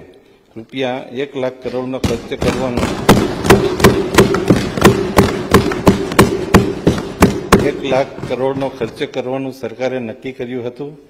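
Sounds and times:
people thumping desks: 0:01.6 - 0:09.2.

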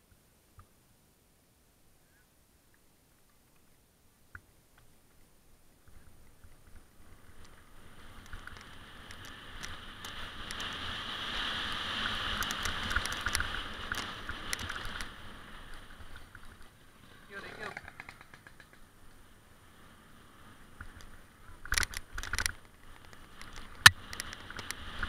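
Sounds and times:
bike tyre noise on dirt: 0:04.3 - 0:25.0
bike clicks and rattles over bumps: 0:05.8 - 0:16.9, 0:17.5 - 0:19.2, 0:20.6 - 0:25.0
rushing wind: 0:05.8 - 0:25.0.

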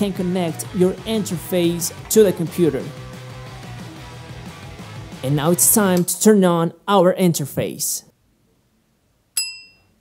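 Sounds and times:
bell-like ding: 0:09.4 - 0:10.0.

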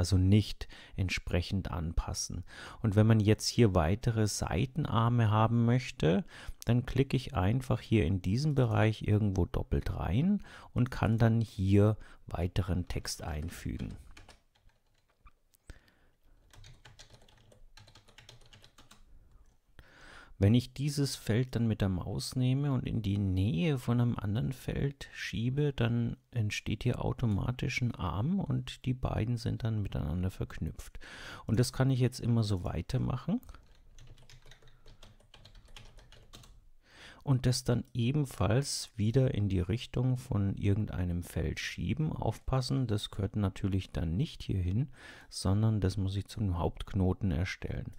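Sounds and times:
typing on computer keyboard: 0:13.4 - 0:15.3, 0:16.4 - 0:19.1, 0:33.5 - 0:36.6.

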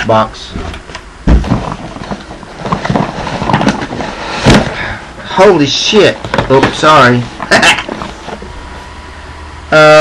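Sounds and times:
cardboard scraping and rustling: 0:00.5 - 0:04.8, 0:06.4 - 0:08.5
heavy thump: 0:00.5 - 0:05.0.

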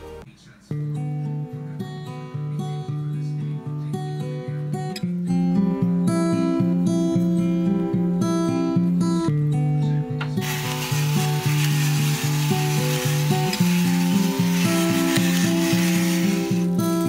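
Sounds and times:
acoustic guitar music: 0:00.0 - 0:17.0
pepper mill grinding: 0:10.4 - 0:17.0.

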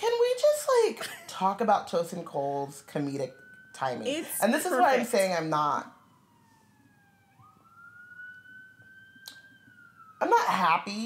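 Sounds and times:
faint wailing tone: 0:02.2 - 0:07.6.

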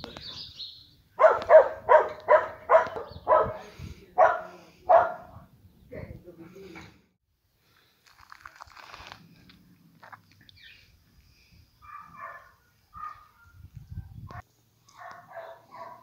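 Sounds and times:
dogs barking: 0:01.2 - 0:05.3, 0:11.8 - 0:13.6, 0:14.3 - 0:16.0.

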